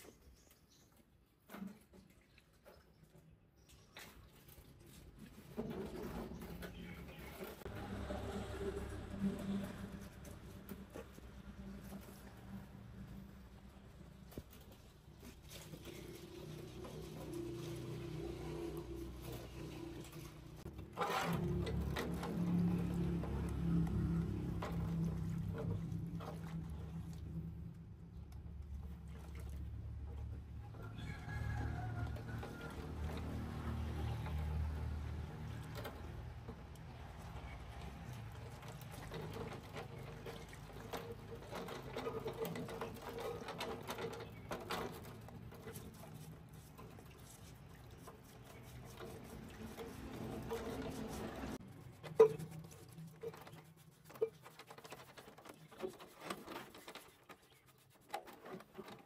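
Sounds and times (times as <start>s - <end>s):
liquid sloshing in a basin: 0.9s - 59.0s.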